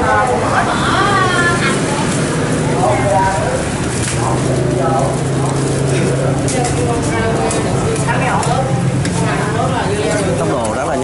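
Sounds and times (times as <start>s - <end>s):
low hum: 0.0s - 10.4s
voices chattering: 0.0s - 11.0s.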